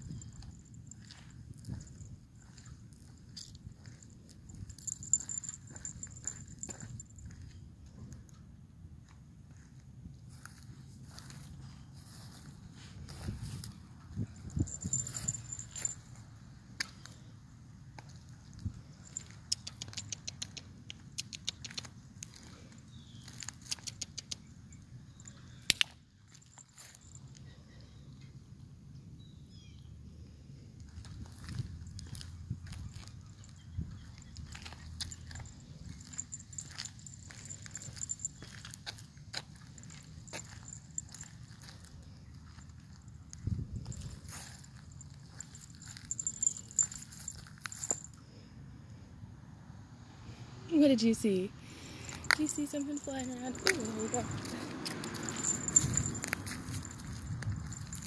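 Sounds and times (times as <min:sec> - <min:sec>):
light ticks and rustles: 0:00.0 - 0:17.3, 0:18.0 - 0:27.6, 0:30.8 - 0:48.2, 0:52.0 - 0:58.0.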